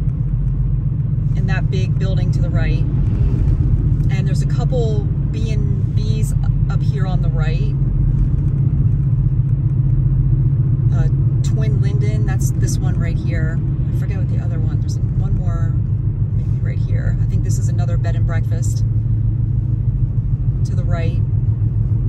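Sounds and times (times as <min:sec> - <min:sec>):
car engine and tyre drone: 0:00.0 - 0:22.0.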